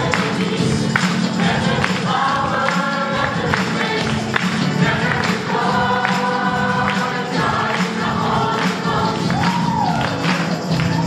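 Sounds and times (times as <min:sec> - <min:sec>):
church choir singing a hymn: 0:00.0 - 0:09.4.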